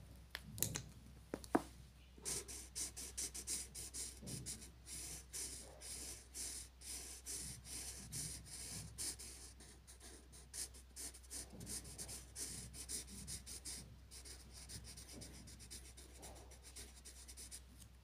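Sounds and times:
marker scratching on paper: 2.2s - 17.6s.

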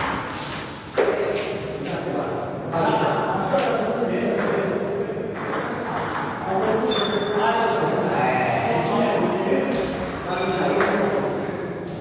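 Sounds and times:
table tennis ball hits: 0.0s - 1.6s, 5.3s - 7.3s.

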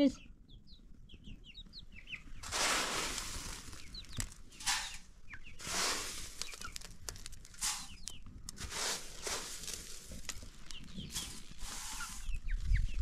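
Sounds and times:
chickens chirping: 0.0s - 13.0s
dry rustling: 2.4s - 12.7s.

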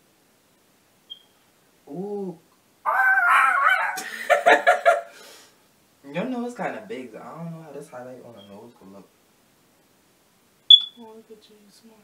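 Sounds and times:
high-pitched vocal squeal: 2.9s - 4.1s.

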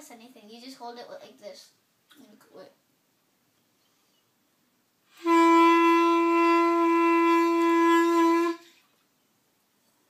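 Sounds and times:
clarinet holding one note: 5.1s - 8.7s.

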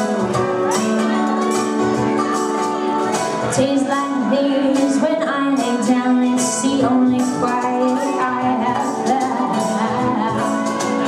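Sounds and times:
hand percussion: 0.0s - 11.0s
mandolin: 0.0s - 11.0s
slide resonator guitar: 0.0s - 11.0s
woman singing: 0.0s - 11.0s.

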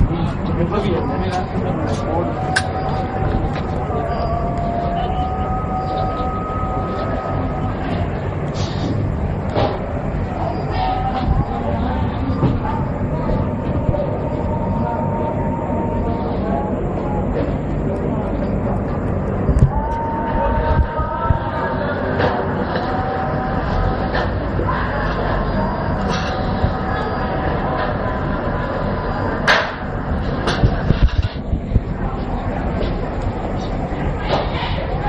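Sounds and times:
low rumble: 2.4s - 34.2s.

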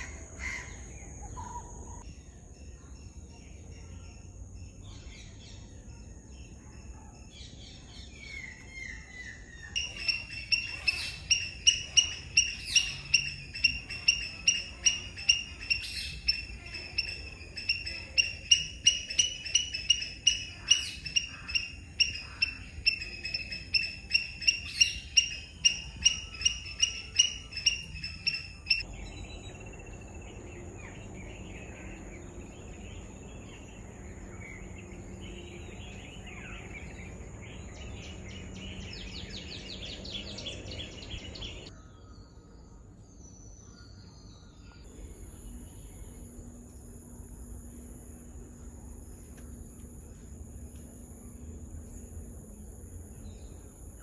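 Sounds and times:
faint bird chirps: 0.0s - 54.0s
steady high-pitched whine: 8.0s - 54.0s.

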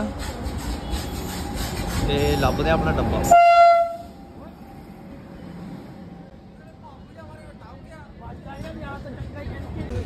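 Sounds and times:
train rumbling: 0.0s - 10.0s
train horn blast: 3.2s - 4.2s.

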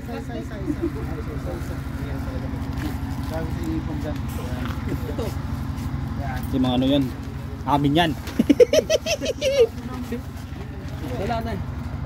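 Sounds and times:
people talking: 0.0s - 5.5s, 6.1s - 11.7s
engine idling: 0.0s - 12.0s.

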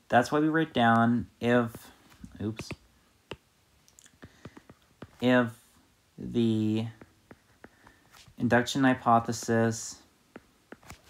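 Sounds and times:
stylus tapping on glass screen: 4.2s - 5.2s.

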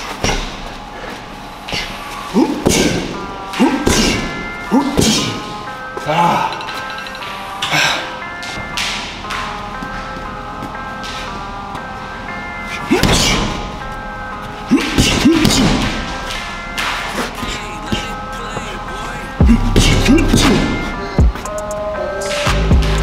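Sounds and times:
rap music with synth melody: 1.2s - 23.0s.

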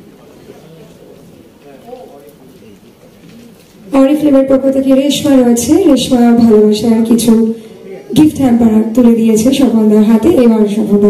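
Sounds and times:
murmur of voices in a hall: 0.0s - 11.0s.

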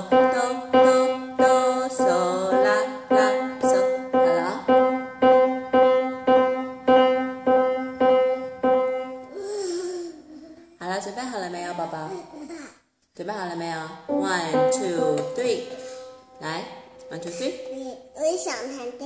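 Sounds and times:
piano note struck repeatedly: 0.0s - 9.4s, 14.1s - 18.2s.

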